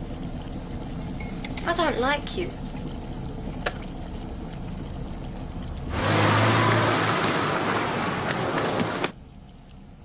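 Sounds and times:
car driving past: 0:05.9 - 0:09.1.

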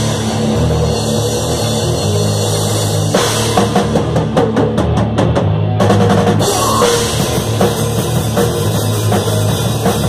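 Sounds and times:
bass guitar: 0:00.0 - 0:10.0
drum kit rapid hits: 0:00.0 - 0:10.0
distorted electric guitar: 0:04.9 - 0:09.8.

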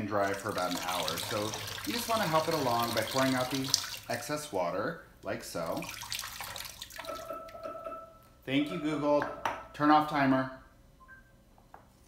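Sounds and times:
water pouring into steel sink: 0:00.0 - 0:04.2, 0:05.7 - 0:07.3.

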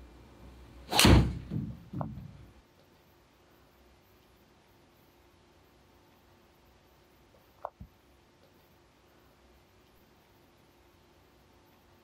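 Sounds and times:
soft thuds: 0:01.0 - 0:02.6.

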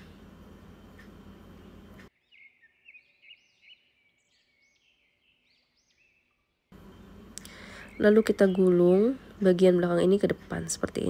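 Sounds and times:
low room noise: 0:00.0 - 0:02.1, 0:06.7 - 0:11.0.

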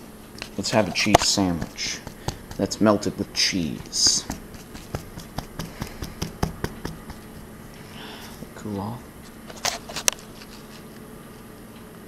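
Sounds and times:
hands tapping sandwich on paper: 0:01.0 - 0:07.5.

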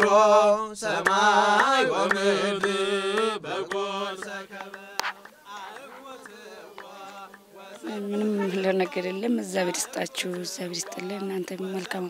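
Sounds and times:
voice chanting a hymn: 0:00.0 - 0:12.0.

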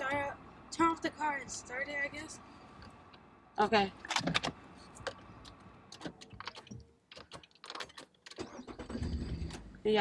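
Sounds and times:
car engine starting: 0:07.9 - 0:10.0.

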